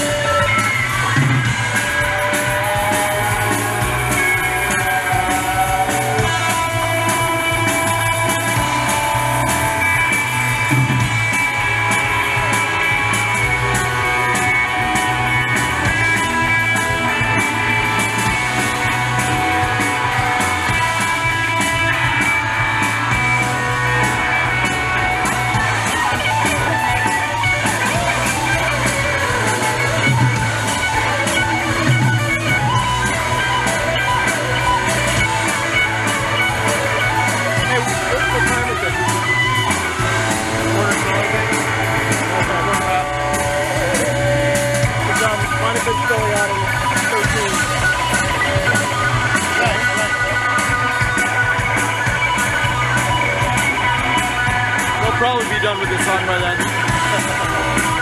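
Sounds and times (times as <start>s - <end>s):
gliding guitar notes: 0.0s - 58.0s
live rock band playing: 0.0s - 58.0s.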